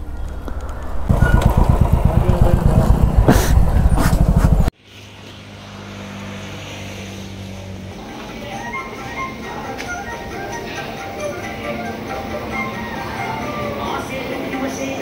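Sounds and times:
motorcycle engine running: 0.0 - 4.7.

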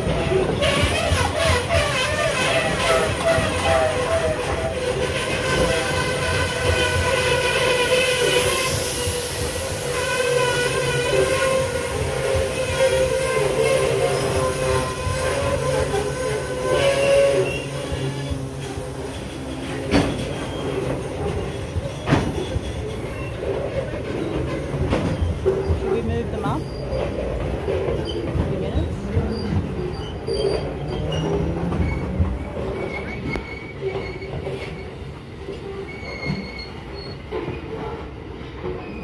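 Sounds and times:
wheels clacking over rail joints: 0.0 - 9.2, 9.8 - 39.0
freight train rumbling past: 0.0 - 39.0
high-pitched wheel squeal: 0.4 - 25.4, 29.4 - 35.1, 35.8 - 37.4.

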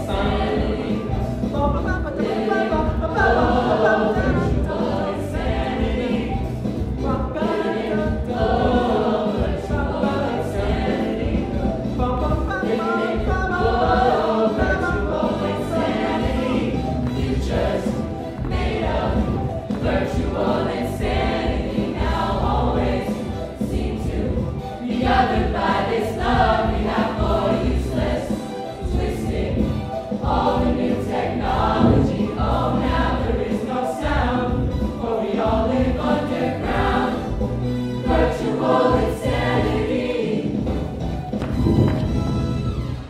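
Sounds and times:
choir singing in parts: 0.0 - 41.9.

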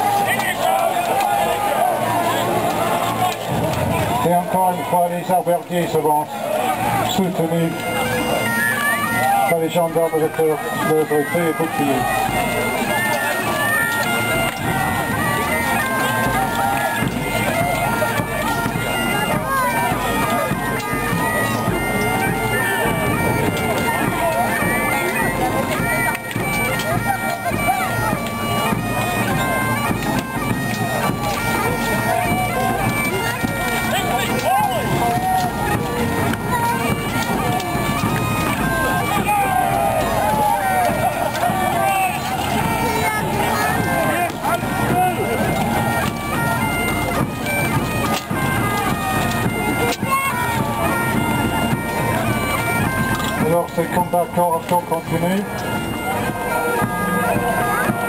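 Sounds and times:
men shouting and calling: 0.0 - 29.8, 30.4 - 47.7, 53.2 - 58.0
bagpipes playing a tune: 0.0 - 58.0.

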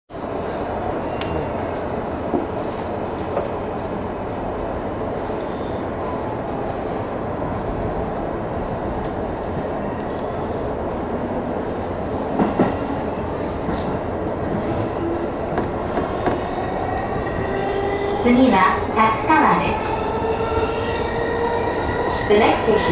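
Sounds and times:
train wheels and motors rumbling: 0.2 - 22.9.

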